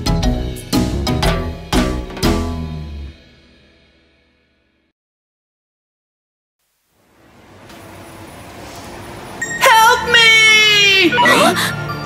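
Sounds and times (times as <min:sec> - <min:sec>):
rumbling city traffic: 0:07.1 - 0:12.0.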